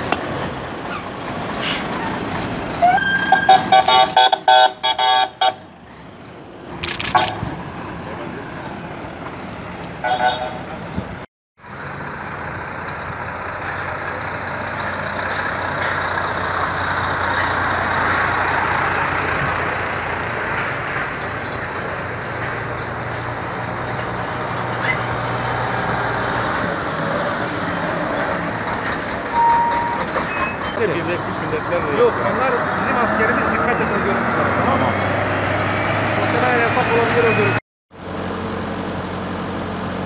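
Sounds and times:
heavy lorries rumbling past: 0.0s - 40.0s
short high beep: 29.3s - 30.5s.

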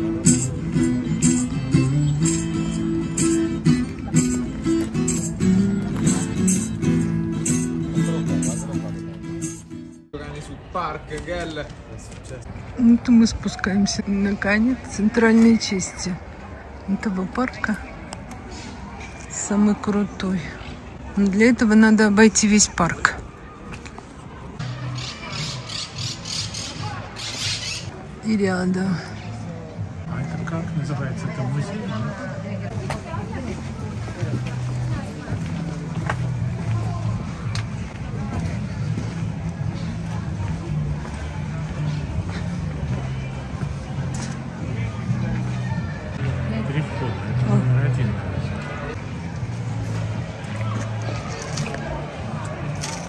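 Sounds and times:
acoustic guitar strumming: 0.0s - 10.1s
faint distant voices: 10.2s - 53.0s.

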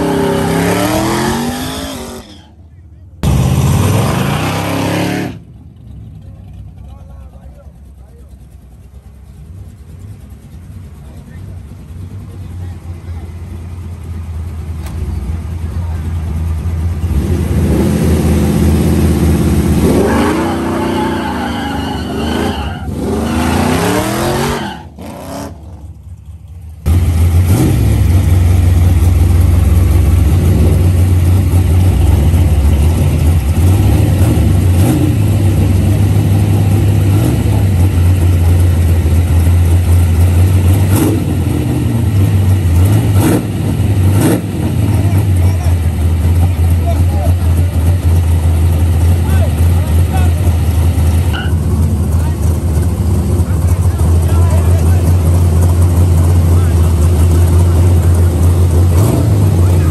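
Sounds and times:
car engine revving: 0.0s - 2.5s, 3.2s - 6.9s, 9.4s - 59.9s
low engine rumble with bumps: 0.0s - 59.9s.

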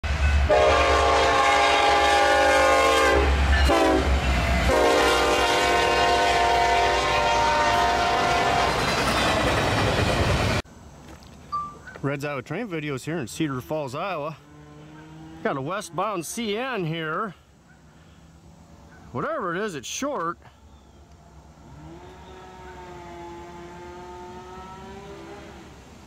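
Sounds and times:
passing train rumble: 0.0s - 20.0s, 20.6s - 26.0s
locomotive air horn blasts: 0.4s - 8.8s, 21.7s - 25.8s.

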